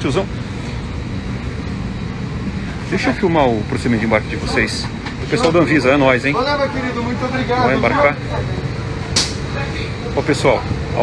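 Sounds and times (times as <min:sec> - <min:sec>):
cabin ventilation rush and hum: 0:00.0 - 0:11.0.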